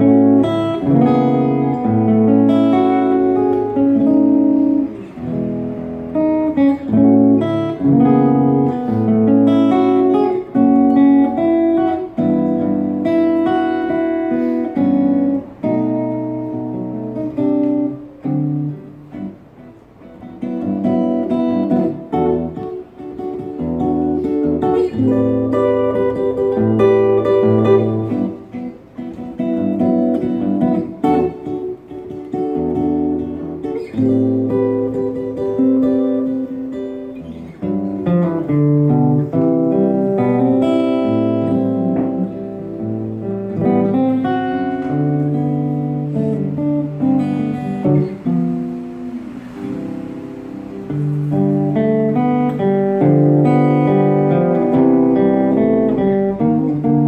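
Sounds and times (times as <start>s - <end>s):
solo acoustic guitar jazz: 0.0s - 57.0s.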